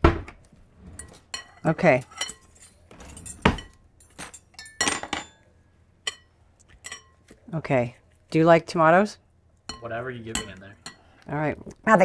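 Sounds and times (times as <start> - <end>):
metal forks clinking on glass bowl: 1.0 - 5.4, 6.1 - 7.2, 9.7 - 11.0.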